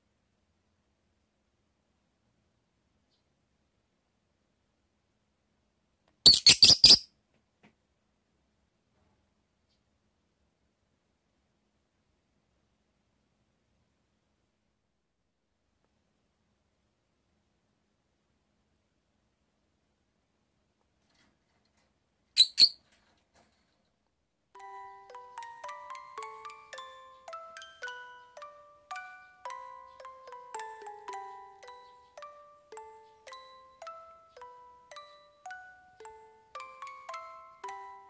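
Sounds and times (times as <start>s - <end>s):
bird high-pitched chirps: 6.3s - 7.1s, 22.4s - 22.8s, 26.4s - 35.5s
mallet percussion music: 24.6s - 38.0s.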